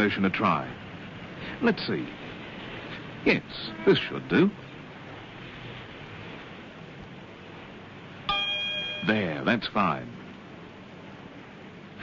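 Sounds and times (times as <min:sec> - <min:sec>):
faint hiss: 0:00.0 - 0:07.0
bell-like chime ringing: 0:08.3 - 0:09.5.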